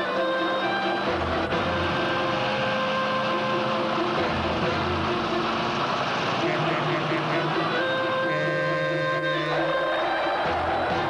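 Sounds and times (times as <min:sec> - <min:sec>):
car driving: 0:00.0 - 0:11.0
soundtrack music: 0:00.0 - 0:11.0.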